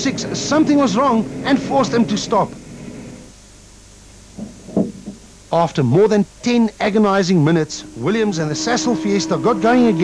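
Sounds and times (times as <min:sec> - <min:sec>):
low background hiss: 0:00.0 - 0:10.0.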